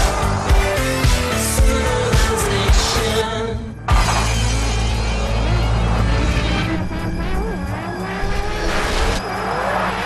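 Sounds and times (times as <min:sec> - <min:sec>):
music with sliding rising tones: 0:00.0 - 0:10.0.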